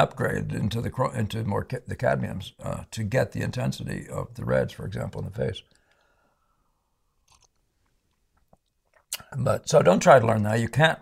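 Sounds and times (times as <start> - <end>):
faint sipping: 7.1 - 9.3.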